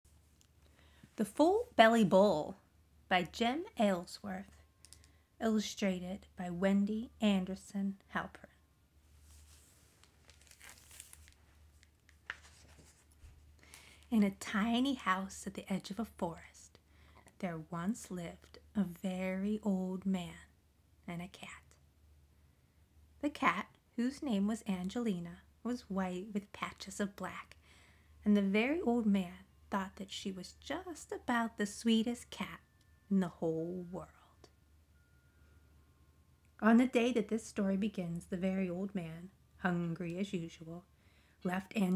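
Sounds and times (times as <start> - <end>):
low steady hum: 0.0 - 41.9.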